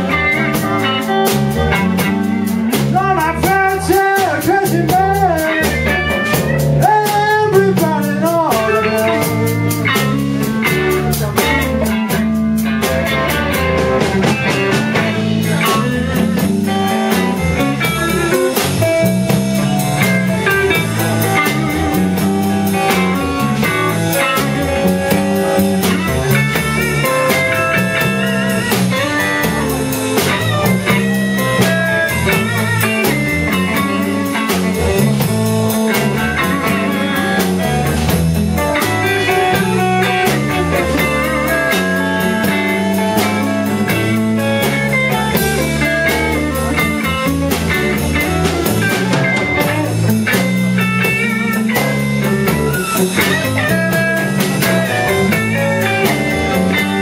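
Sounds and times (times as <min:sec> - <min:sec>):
blues band playing: 0:00.0 - 0:57.0
electric guitar line: 0:00.0 - 0:57.0.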